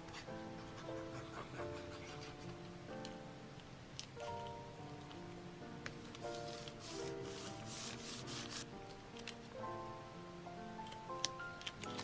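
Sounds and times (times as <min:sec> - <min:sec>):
soft background music: 0:00.0 - 0:12.0
hands smoothing paper: 0:06.1 - 0:08.6.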